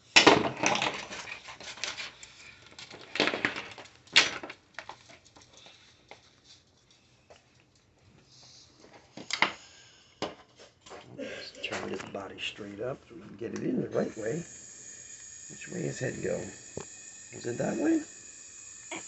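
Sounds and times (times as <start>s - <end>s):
small parts and tools clattering: 0.0s - 7.0s.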